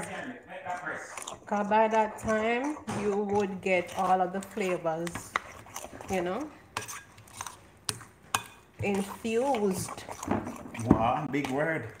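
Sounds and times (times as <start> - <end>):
utensil stirring thick batter: 0.0 - 12.0.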